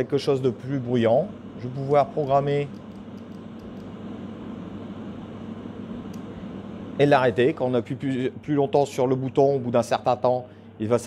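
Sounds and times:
air filter fan whooshing: 0.0 - 11.0.

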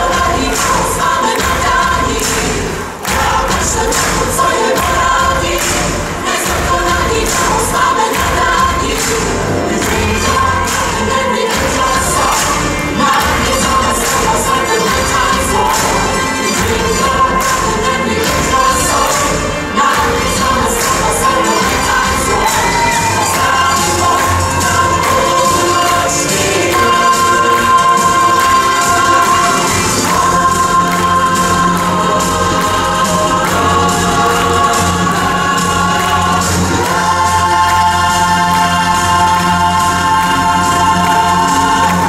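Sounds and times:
ensemble singing in chorus: 0.0 - 42.0
audience cheering: 21.5 - 26.0.

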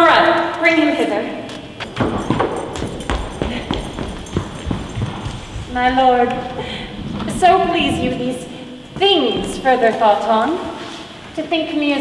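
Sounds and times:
high-heeled footsteps on hard floor: 1.5 - 6.6, 8.9 - 10.2.

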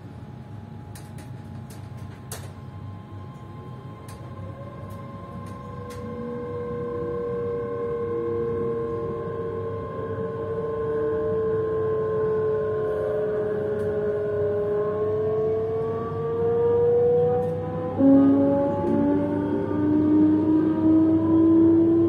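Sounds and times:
lower motor whine: 0.0 - 22.0
train motors whining rising pitch: 1.7 - 22.0.

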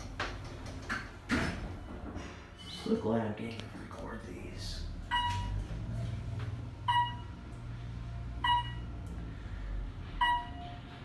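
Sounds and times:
low hum of elevator: 0.0 - 11.0
elevator beep: 5.1 - 5.6, 6.8 - 7.4, 8.4 - 9.0, 10.2 - 11.0.

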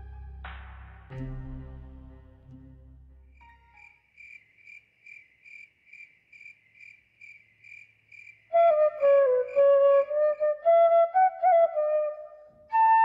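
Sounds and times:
bamboo flute melody: 0.0 - 2.7, 8.6 - 13.0
cricket chirping: 3.3 - 10.5.

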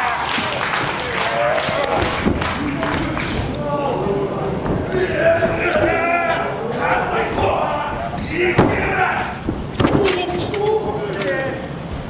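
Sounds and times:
people shouting: 4.8 - 11.0.

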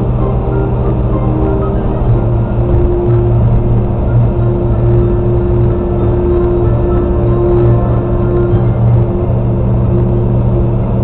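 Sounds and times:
car cabin drone at highway speed: 0.0 - 11.0
low ambient music tones: 0.0 - 11.0.

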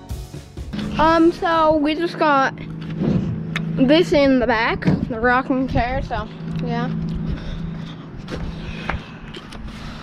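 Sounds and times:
steady low hum: 0.7 - 10.0.

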